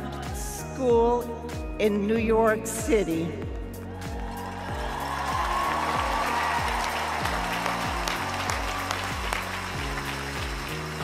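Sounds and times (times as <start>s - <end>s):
low background music: 0.0s - 11.0s
crowd applauding and cheering: 3.5s - 11.0s.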